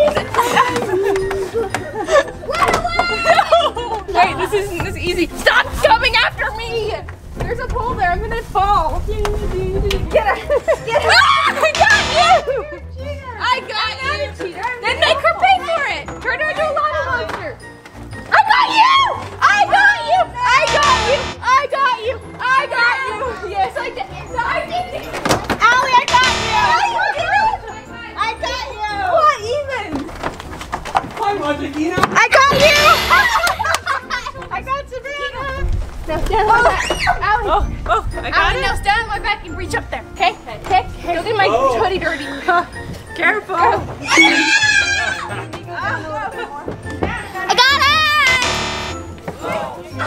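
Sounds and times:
background music: 0.0 - 50.0
children shouting and squealing: 36.5 - 37.4, 44.0 - 45.4.

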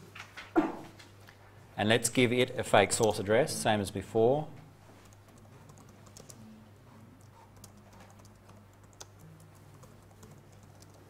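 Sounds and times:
computer keyboard keystrokes: 5.2 - 6.4, 7.2 - 11.0.

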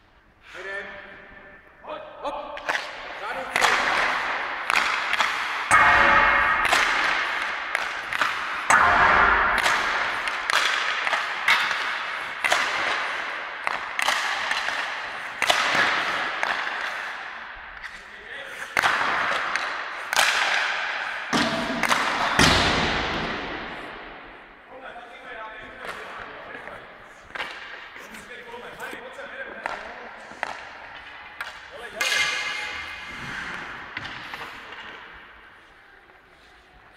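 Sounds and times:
pucks hitting boards: 2.6 - 24.4, 25.6 - 35.6
hockey sticks striking pucks: 2.6 - 35.8.

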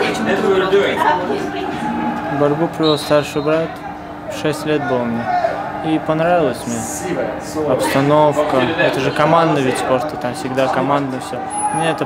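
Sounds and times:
man speaking: 5.8 - 12.0.

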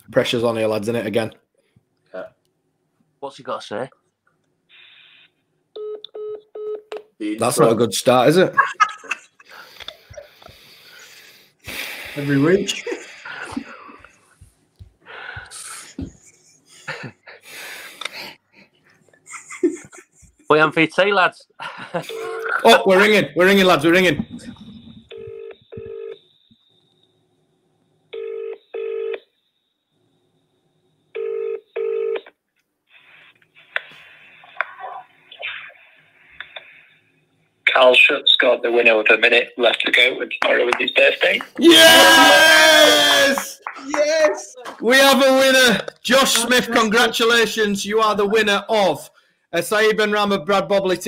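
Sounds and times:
people whispering: 15.1 - 17.1, 24.0 - 25.1, 34.4 - 35.8, 37.7 - 41.7, 46.0 - 47.2
telephone ringback tone: 25.1 - 26.2, 28.2 - 29.2, 31.2 - 32.2.

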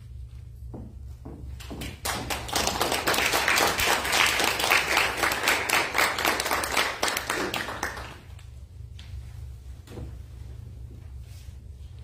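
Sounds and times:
audience applauding: 2.0 - 8.3.

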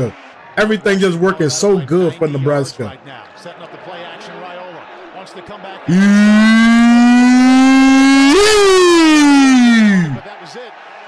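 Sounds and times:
man yelling: 5.9 - 10.2.

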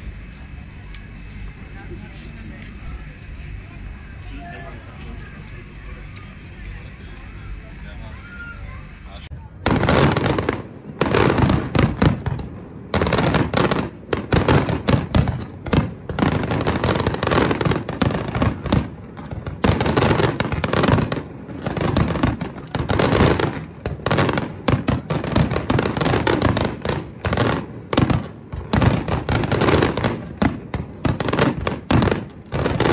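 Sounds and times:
fireworks bursting: 0.0 - 32.9.

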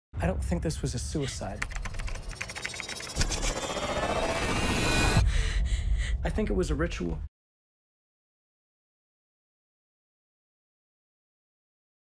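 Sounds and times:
computer keyboard typing: 1.4 - 4.3.

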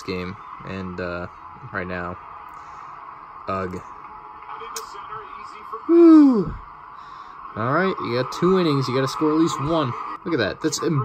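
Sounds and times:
faint announcer speech: 3.4 - 6.6
man exclaiming whew: 5.9 - 6.6.

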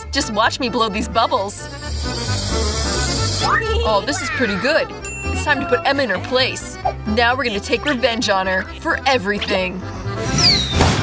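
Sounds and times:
hissing sound effect: 1.6 - 3.6.

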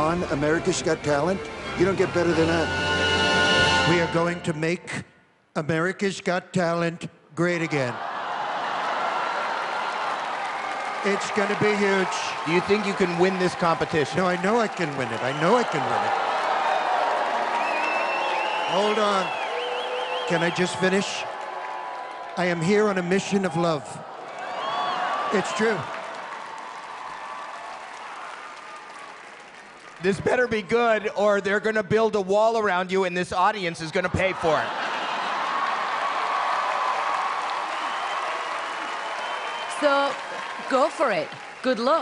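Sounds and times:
audience applauding and cheering: 0.0 - 4.6, 7.4 - 42.0.

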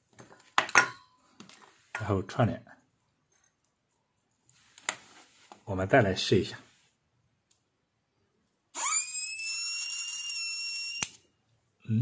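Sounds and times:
inverter high-pitched whine: 8.8 - 11.2.

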